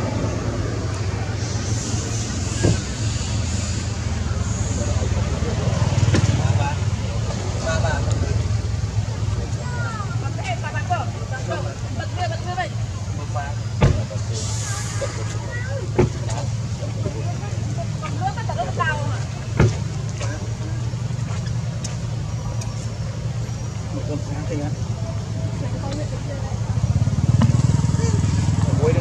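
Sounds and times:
faint unclear voices: 0.0 - 29.0
low engine-like rumble: 0.0 - 29.0.

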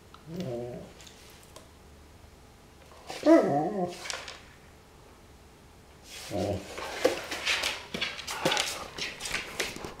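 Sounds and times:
dog claws clicking on hard floor: 6.8 - 10.0.

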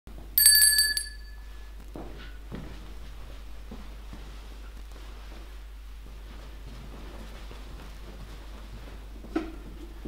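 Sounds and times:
small handbell ringing: 0.4 - 1.4.

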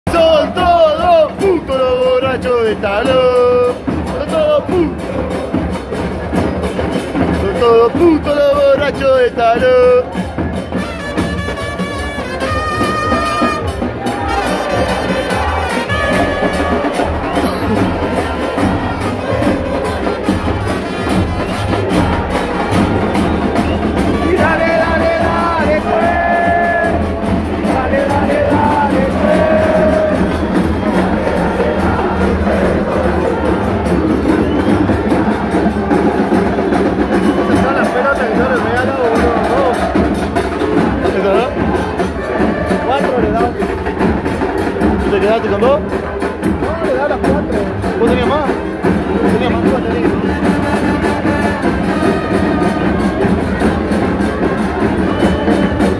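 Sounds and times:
crowd chanting: 0.0 - 55.9
bass drums beating: 0.1 - 55.9
trumpet phrases: 10.7 - 22.8, 41.0 - 43.6, 49.2 - 55.9.

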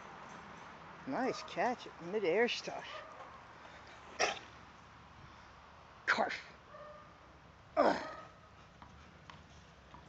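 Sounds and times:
dog barking: 2.9 - 3.3.

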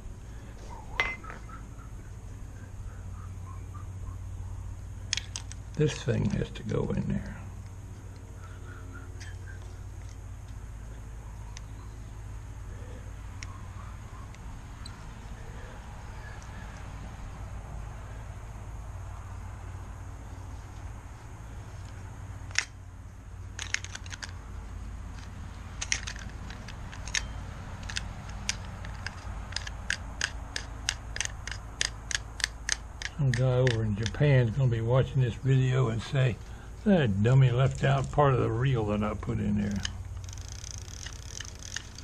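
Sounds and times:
small metal clicks and taps: 25.1 - 34.2.

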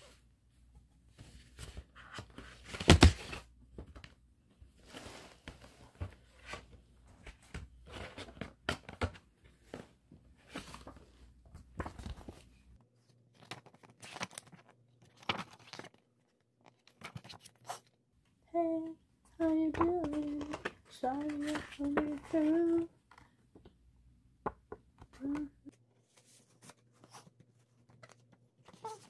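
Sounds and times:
cd booklet rustling and clicks: 13.1 - 17.9, 19.4 - 23.6.

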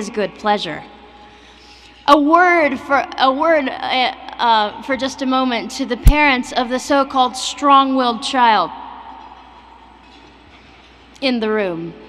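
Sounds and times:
low background hum and hiss: 0.0 - 12.0.

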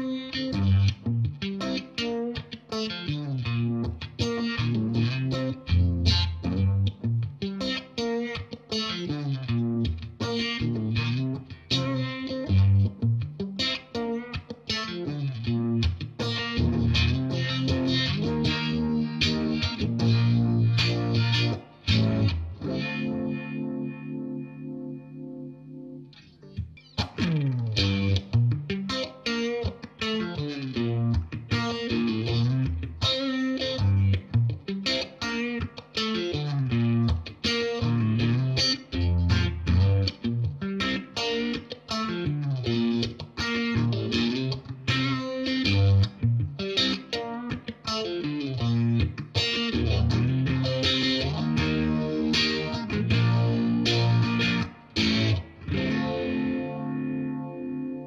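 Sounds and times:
electric guitar with phaser: 0.0 - 58.0.

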